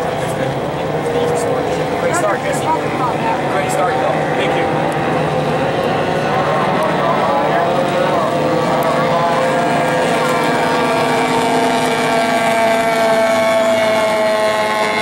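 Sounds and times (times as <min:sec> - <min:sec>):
outboard engines high buzz: 0:00.0 - 0:15.0.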